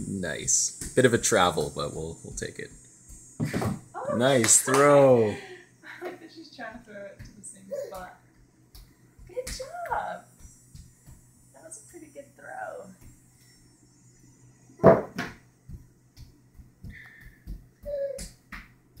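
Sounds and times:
soft low thumps: 0.0s - 4.1s, 8.0s - 13.4s
steady low hum: 0.0s - 19.0s
baby babbling: 7.7s - 8.1s, 17.8s - 18.2s.

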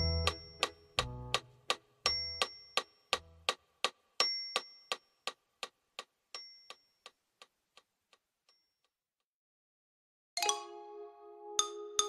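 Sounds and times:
bright ticking musical notes: 0.0s - 5.4s.

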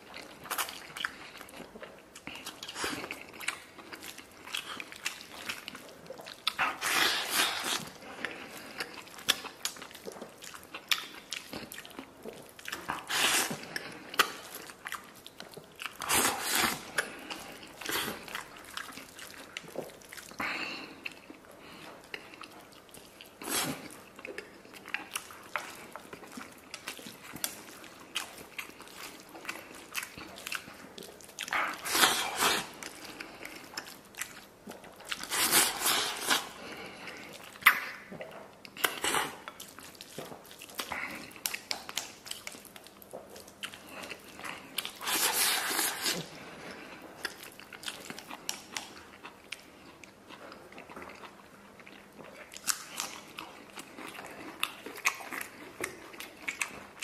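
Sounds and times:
man chewing and smacking: 0.0s - 57.0s.

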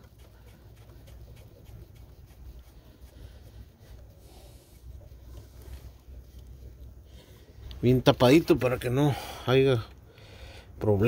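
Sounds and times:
rustling among hoses and wiring: 0.0s - 10.1s.

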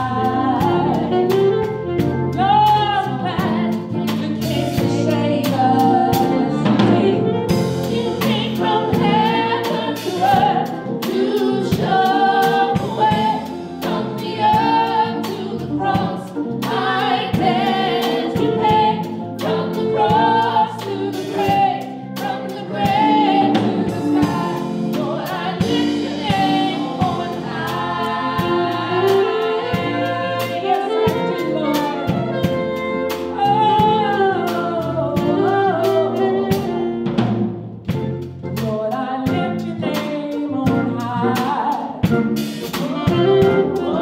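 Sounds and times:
electric guitar: 0.0s - 15.1s, 21.0s - 44.0s
gospel singers in harmony: 0.0s - 37.2s, 38.5s - 44.0s
steady drum beat: 0.0s - 44.0s.

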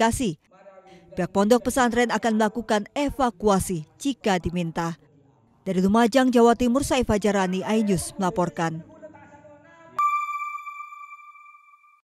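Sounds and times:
high electronic chime: 10.0s - 12.0s.

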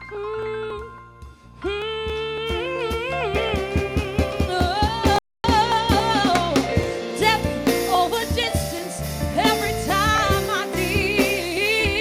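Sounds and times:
live band with drum beats: 0.7s - 12.0s.

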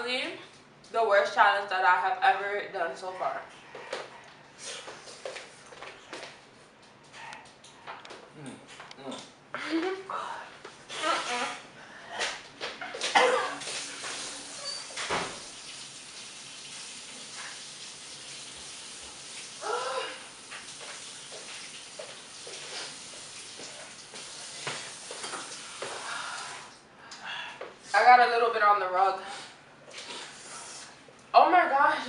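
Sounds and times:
person spitting and rinsing mouth: 4.6s - 5.4s, 10.9s - 15.6s, 18.9s - 26.8s, 29.4s - 31.1s
short vocal noises: 8.3s - 9.3s
tap water running into sink: 13.6s - 19.6s, 20.4s - 26.6s.

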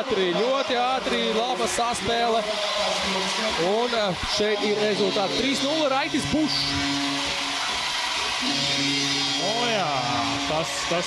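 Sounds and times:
crowd and hall noise: 0.0s - 11.0s.

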